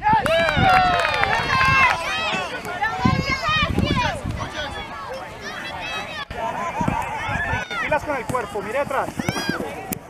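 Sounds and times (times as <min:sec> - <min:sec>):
voices talking and calling out: 0:00.0 - 0:10.0.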